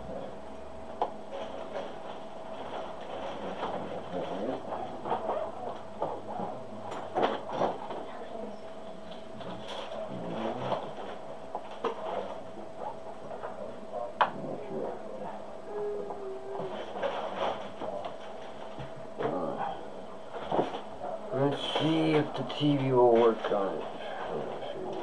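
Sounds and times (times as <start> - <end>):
faint steady hum: 0.0 - 25.0.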